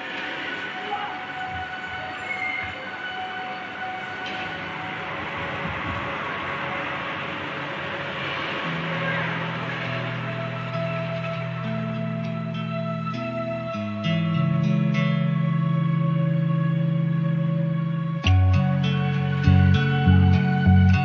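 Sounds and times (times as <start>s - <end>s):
ambient background music: 0.0s - 21.0s
low sustained chord: 0.0s - 21.0s.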